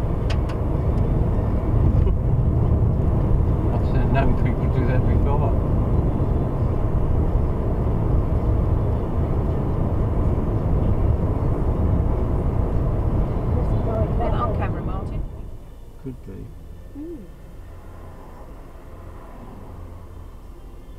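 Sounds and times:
car engine: 0:00.0 - 0:20.9.

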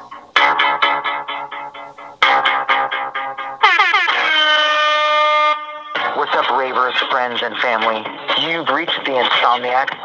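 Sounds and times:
music with plucked notes: 0:00.0 - 0:10.0.

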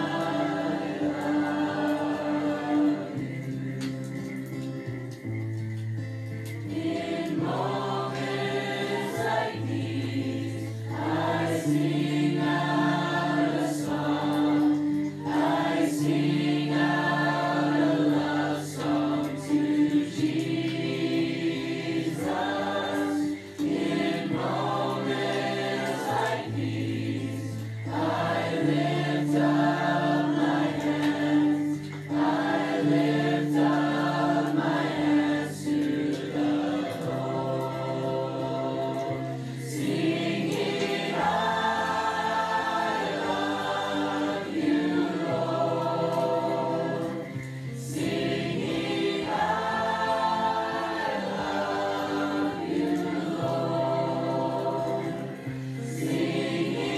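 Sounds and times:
choir singing gospel: 0:00.0 - 0:56.9.

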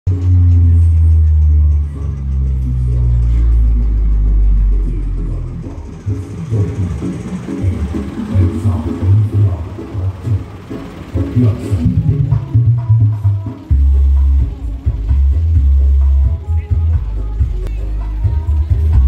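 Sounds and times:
loud bass-heavy music: 0:00.1 - 0:19.0.

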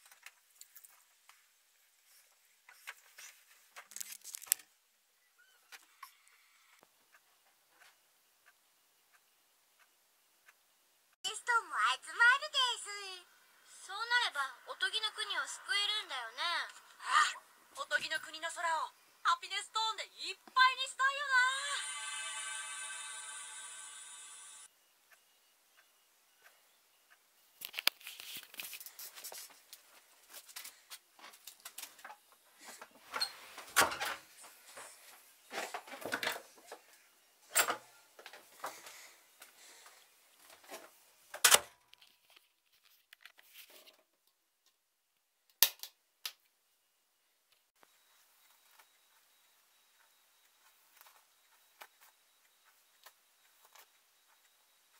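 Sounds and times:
high-pitched girl's voice speaking: 0:11.3 - 0:21.9
loud noisy burst: 0:21.6 - 0:24.6.

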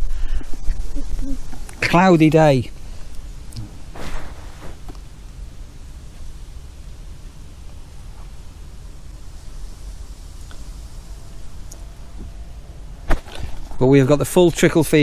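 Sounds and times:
low rumble and hiss: 0:00.0 - 0:15.0.

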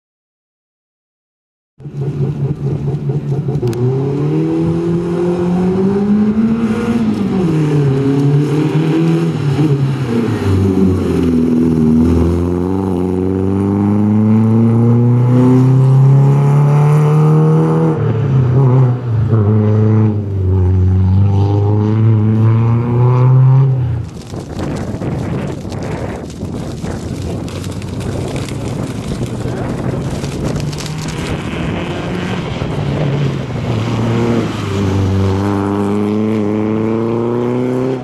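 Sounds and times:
rally car engine revving hard: 0:01.9 - 0:23.8, 0:29.5 - 0:38.0.

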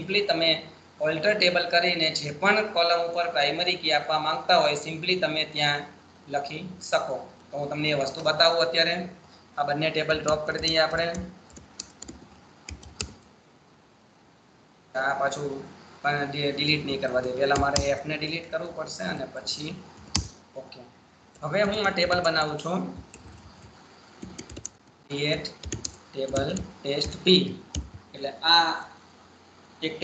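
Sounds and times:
computer keyboard key clicks: 0:10.2 - 0:13.2, 0:17.5 - 0:17.9, 0:20.0 - 0:20.4, 0:24.2 - 0:24.8, 0:25.5 - 0:28.0.

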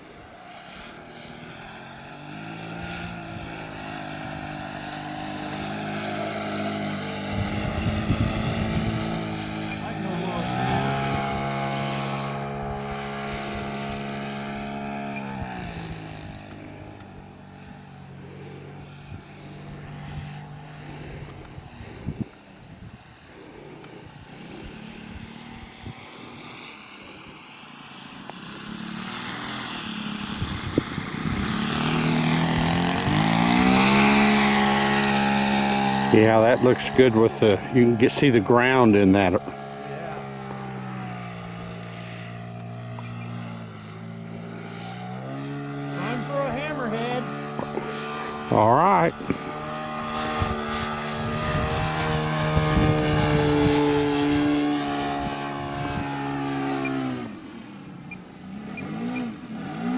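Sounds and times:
model plane engine and propeller: 0:00.0 - 0:59.9.

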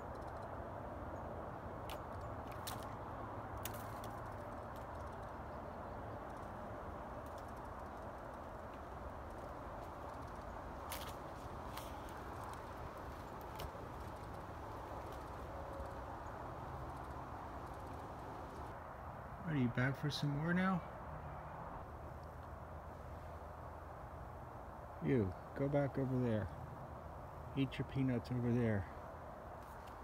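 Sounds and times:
outdoor background noise: 0:00.0 - 0:30.0.

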